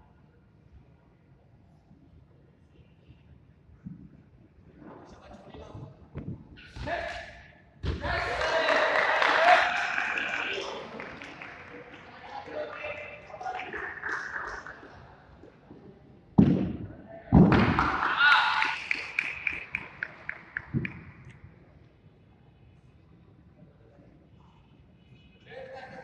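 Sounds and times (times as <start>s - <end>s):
voices: 7.9s - 16.0s, 16.8s - 21.4s
people clapping: 8.0s - 15.6s, 17.5s - 21.4s.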